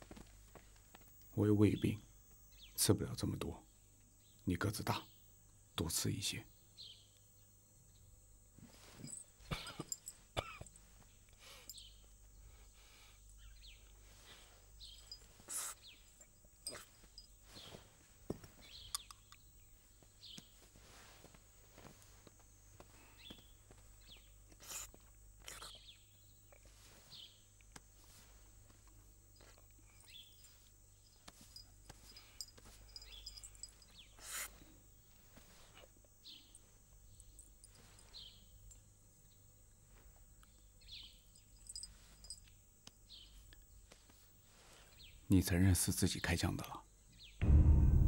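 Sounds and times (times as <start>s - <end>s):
rustle: 6.2s - 45.5s
soft high chirps: 29.4s - 34.6s.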